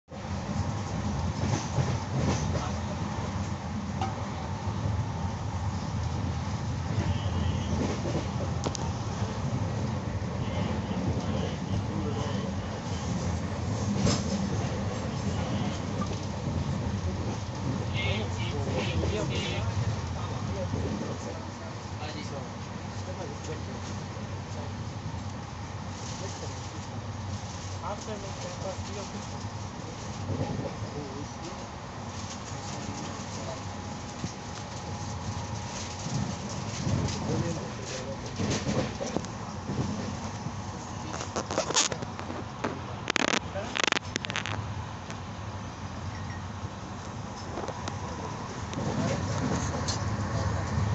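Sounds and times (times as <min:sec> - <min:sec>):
train wheels rumbling on rails: 0:00.1 - 0:45.2, 0:46.0 - 0:50.9.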